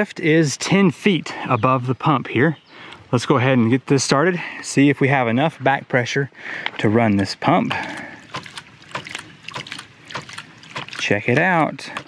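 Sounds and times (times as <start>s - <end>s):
water spurting and splashing: 7.4s - 12.0s
pump valve clacking shut: 7.9s - 12.0s.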